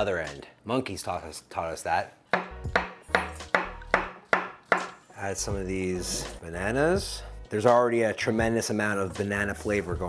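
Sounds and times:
knife knocking on cutting board: 2.4 - 5.0.

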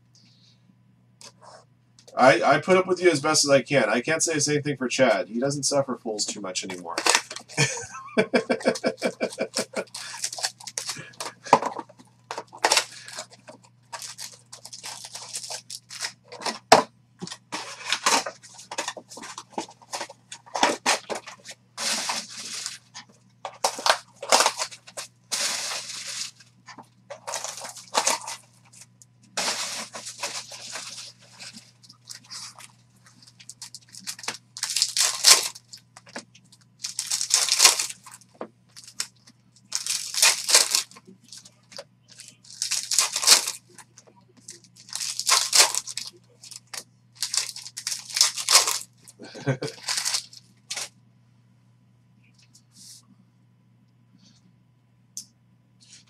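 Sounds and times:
steady low hum: 0.0 - 56.0
foil packs tearing and crinkling: 6.9 - 7.8, 8.4 - 26.4, 27.1 - 28.8, 29.4 - 36.2, 36.8 - 39.1, 39.7 - 41.5, 42.2 - 43.8, 44.5 - 48.9, 49.6 - 50.9.

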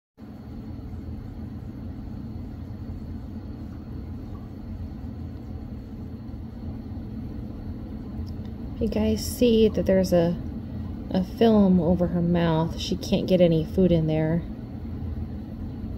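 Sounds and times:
low rumbling background noise: 0.2 - 15.9.

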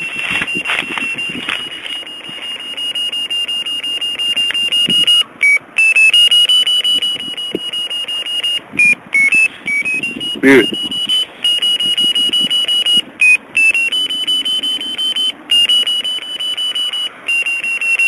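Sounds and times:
receiver beeping rapidly: 0.0 - 18.0.

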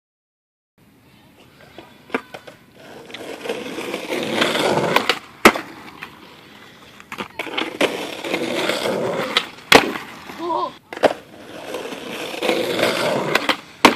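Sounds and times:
skateboard wheels rolling: 1.3 - 13.9
skateboard clacks: 1.7 - 6.2, 7.0 - 13.9.

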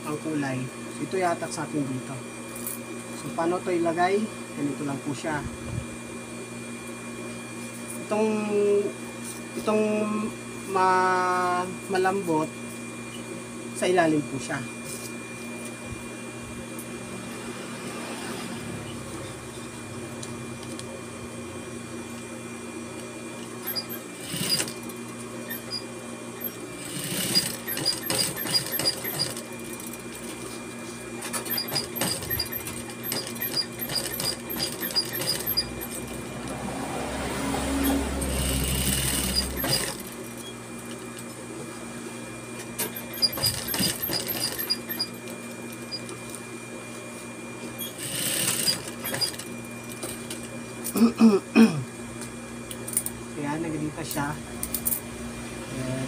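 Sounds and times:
sewing machine motor humming: 23.4 - 30.4, 31.2 - 41.0, 42.8 - 46.2, 47.8 - 50.4
sewing machine stitching: 23.6 - 25.8, 26.4 - 29.9, 31.2 - 36.2, 37.8 - 40.2, 42.8 - 45.2, 47.8 - 50.1.

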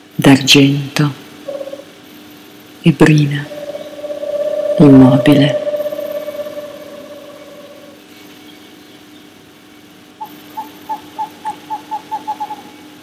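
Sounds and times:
faint steady hum: 0.0 - 13.0
held tone: 3.4 - 8.0.

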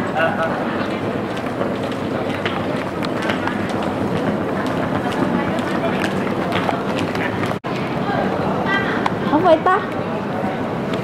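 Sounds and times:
suitcases rolling on tiled floor: 0.0 - 8.6
murmur of voices: 0.0 - 11.0
footsteps: 0.8 - 7.6.

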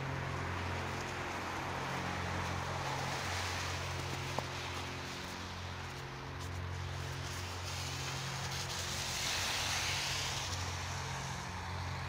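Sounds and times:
footsteps crunching through snow: 0.8 - 11.3.

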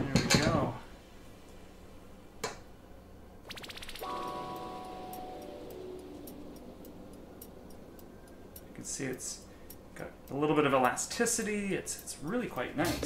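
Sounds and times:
spatula scraping dough ticks: 8.6 - 12.8.

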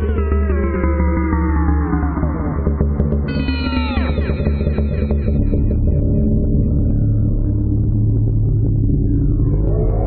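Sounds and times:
low electronic drone: 0.0 - 10.0.

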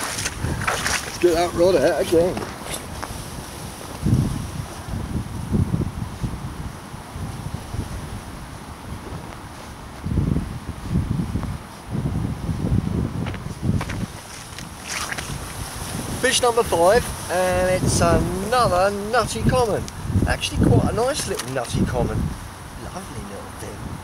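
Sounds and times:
wind gusting across microphone: 0.0 - 24.0.

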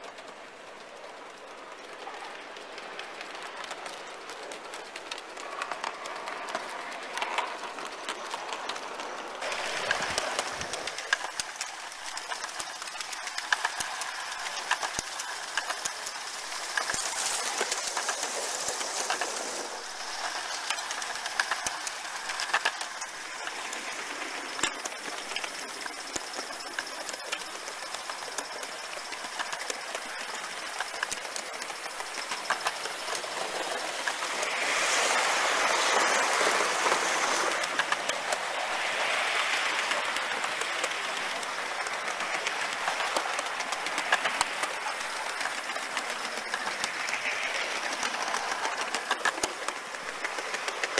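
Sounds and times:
model train wheels rattling: 0.0 - 50.9.

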